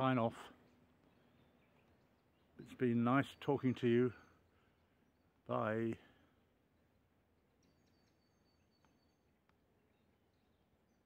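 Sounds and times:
faint high bird calls: 0.6 - 6.2, 7.5 - 11.0.

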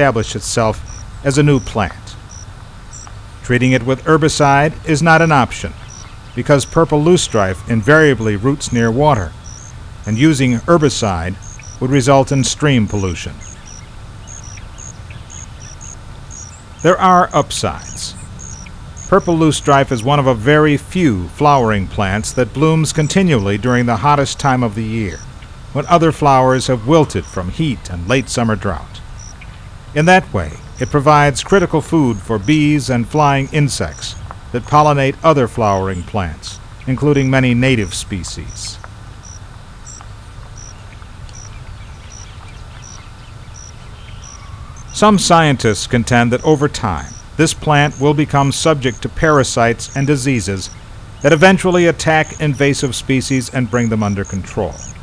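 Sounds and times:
crickets chirping: 0.0 - 55.0
low marsh rumble: 0.0 - 55.0.

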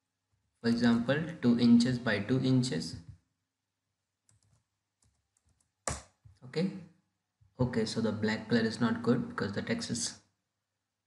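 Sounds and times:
keyboard clicks: 4.3 - 6.2.

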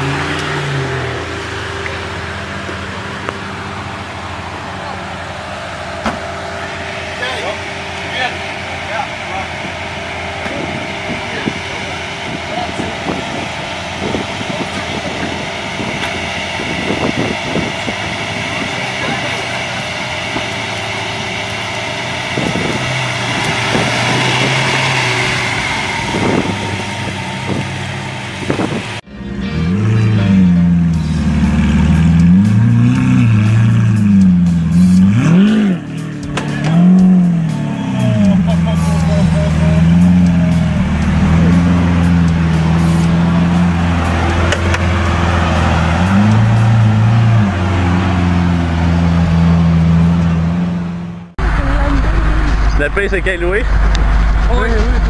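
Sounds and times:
car engine idling: 0.0 - 55.0
engine throttle blips: 0.0 - 55.0
noisy background: 51.4 - 55.0.

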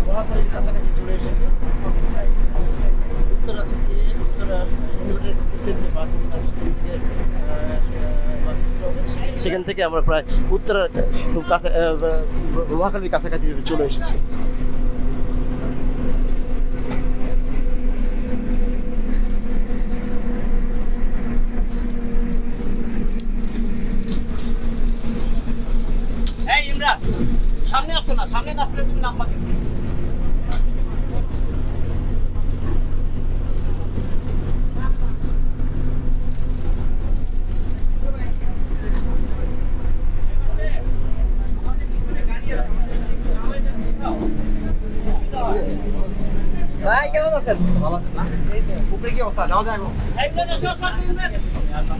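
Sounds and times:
bus engine and road drone: 0.0 - 51.9
passengers' voices: 27.6 - 36.0, 37.0 - 51.9.

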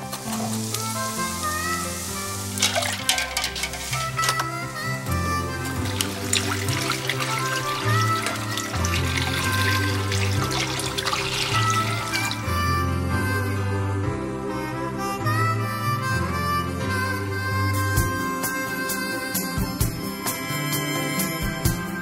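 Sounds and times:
background music with bass line: 0.0 - 22.0
hiss: 0.1 - 2.6.

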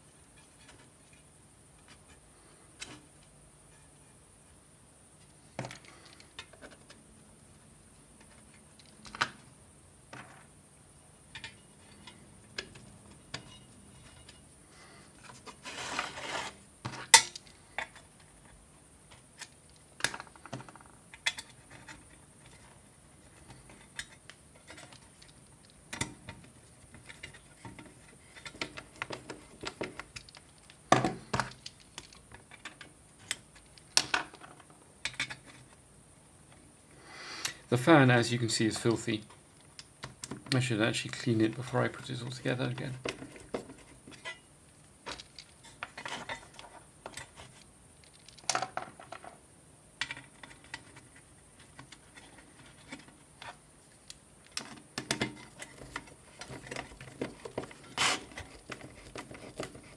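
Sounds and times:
hands handling fan and case: 5.2 - 7.1, 11.3 - 14.5, 15.1 - 35.8, 41.4 - 49.4, 50.0 - 59.9
rustling: 11.3 - 36.8, 40.4 - 49.5, 50.1 - 59.9.

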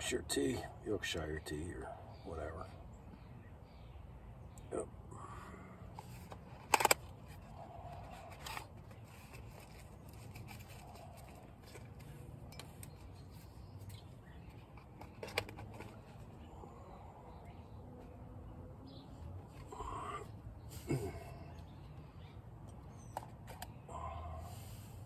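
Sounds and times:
low steady background noise: 0.0 - 25.0
cooking gear clicks and knocks: 13.9 - 16.2.

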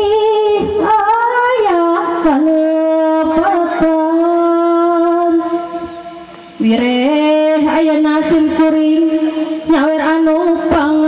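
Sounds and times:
person singing a long reedy note: 0.0 - 11.0.

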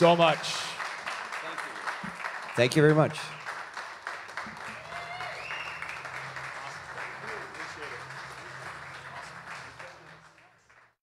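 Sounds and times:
applause: 0.0 - 11.0.

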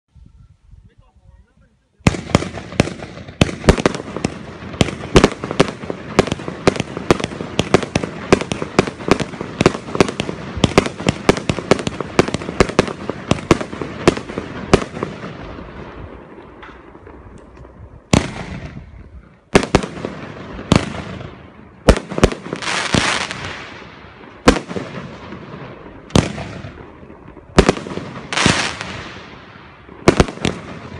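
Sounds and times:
fireworks bangs: 2.0 - 30.9
firework bang: 16.6 - 18.9.

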